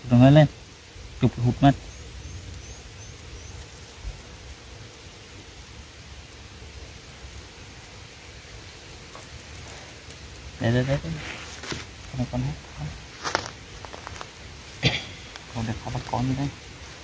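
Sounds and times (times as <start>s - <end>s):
low outdoor hiss: 0.0s - 17.0s.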